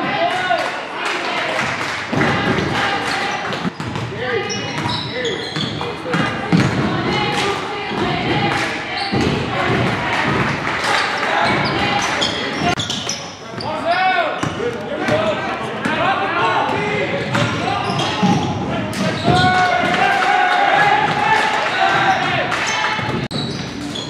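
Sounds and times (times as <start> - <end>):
sneakers squeaking: 2.2 - 16.0, 16.6 - 20.0, 21.0 - 24.0
people shouting: 17.6 - 23.1.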